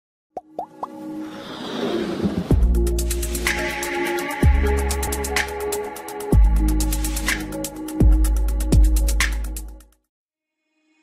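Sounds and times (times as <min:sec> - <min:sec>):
intro music: 0:02.2 - 0:09.8.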